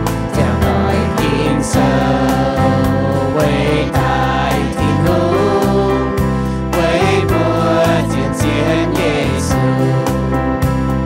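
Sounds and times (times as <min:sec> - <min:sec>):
instrumental accompaniment: 0:00.0 - 0:11.0
group singing a hymn: 0:00.3 - 0:10.8.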